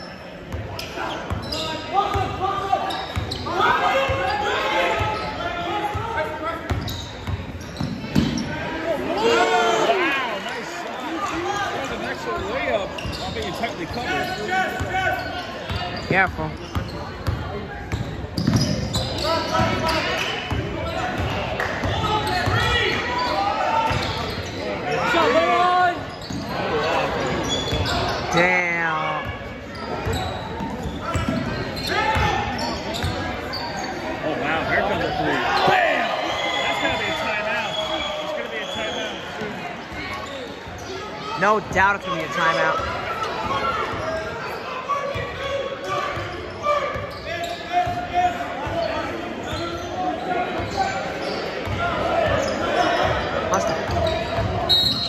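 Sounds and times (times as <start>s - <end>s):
hubbub of spectators' voices: 0.0s - 55.0s.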